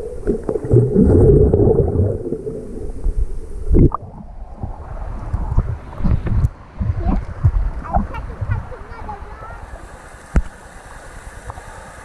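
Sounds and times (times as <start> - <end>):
low underwater thuds: 0.0 - 8.9
muffled underwater river rumble: 0.0 - 12.0.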